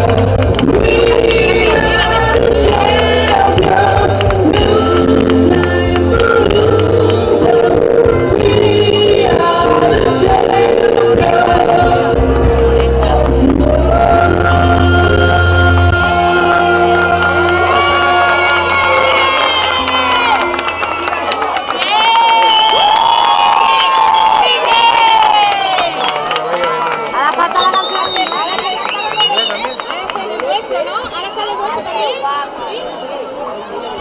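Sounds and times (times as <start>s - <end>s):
pop music over loudspeakers: 0.0s - 21.3s
audience cheering: 15.7s - 30.6s
children shouting and whooping: 16.7s - 26.0s.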